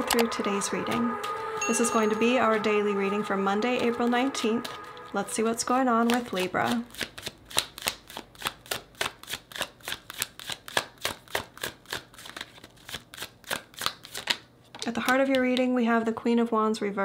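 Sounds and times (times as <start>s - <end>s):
cards being shuffled: 6.0s - 15.6s.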